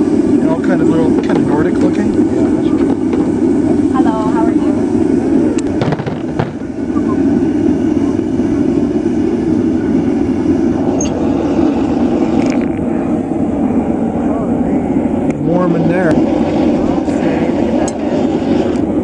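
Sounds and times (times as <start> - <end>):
gas burner rushing: 0.0 - 19.0.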